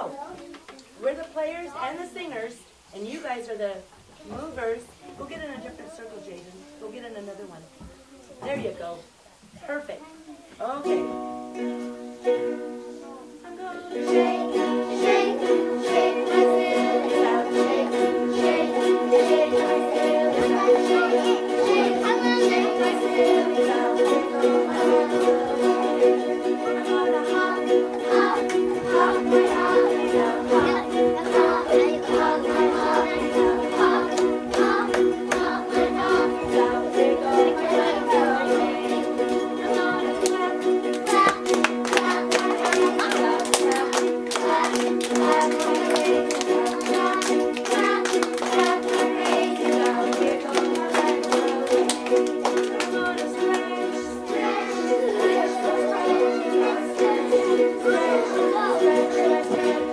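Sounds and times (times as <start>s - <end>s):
ukuleles strummed: 10.6s - 59.9s
voices singing: 13.0s - 59.9s.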